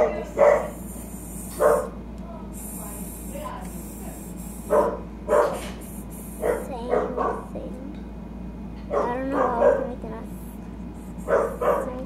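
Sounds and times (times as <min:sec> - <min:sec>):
dog barking: 0:00.0 - 0:00.9, 0:01.5 - 0:02.0, 0:04.6 - 0:05.8, 0:06.4 - 0:07.6, 0:08.9 - 0:10.0, 0:11.2 - 0:12.0.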